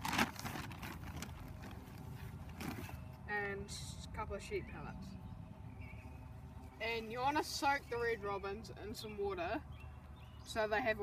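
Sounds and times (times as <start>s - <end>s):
plastic bag rustling and scraping: 0.0s - 3.2s
low outdoor rumble: 0.0s - 11.0s.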